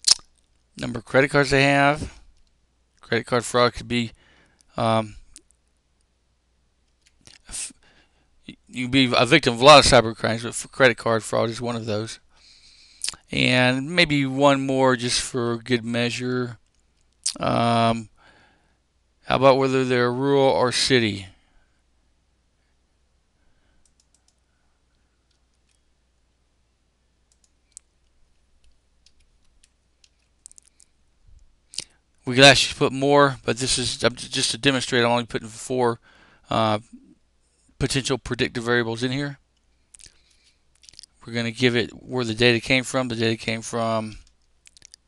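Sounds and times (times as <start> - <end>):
computer keyboard clicks: 23.8 - 24.4, 28.6 - 30.7
computer keyboard keystroke clicks: 23.8 - 24.4.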